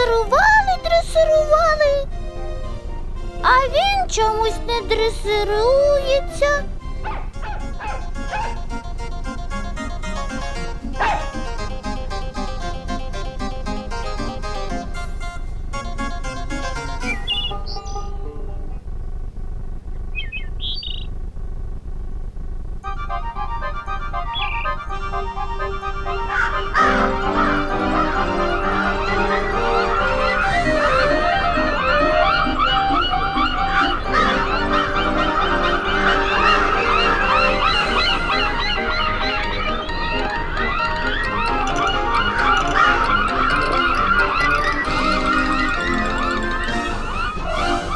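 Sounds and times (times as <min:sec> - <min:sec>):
plucked-string cartoon tune: 0:00.0 - 0:19.0, 0:22.8 - 0:47.9
orchestral music: 0:02.1 - 0:18.8, 0:22.8 - 0:47.9
high twittering bird chirps: 0:17.0 - 0:18.2, 0:20.0 - 0:21.2, 0:24.2 - 0:24.9, 0:36.1 - 0:47.5
soft sustained accompaniment: 0:22.8 - 0:47.9
cartoon crows cawing: 0:26.3 - 0:47.9.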